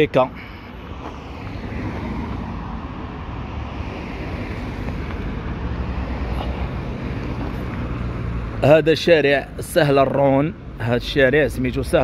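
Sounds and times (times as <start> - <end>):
cars driving past: 0.0 - 12.0.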